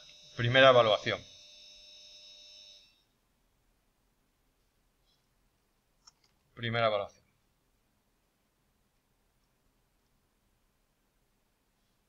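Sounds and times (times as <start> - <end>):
high-pitched electrical whine: 0.0 - 3.2.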